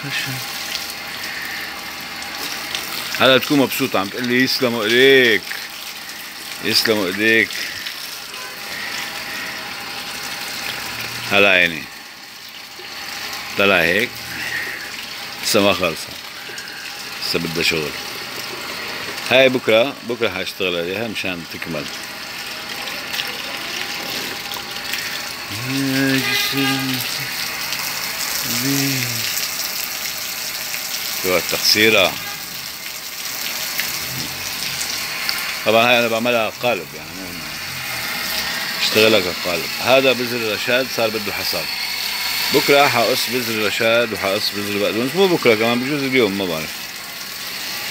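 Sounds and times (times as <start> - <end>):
water spraying: 0.0 - 47.9
man humming: 25.5 - 27.4, 28.4 - 29.4, 34.0 - 34.8.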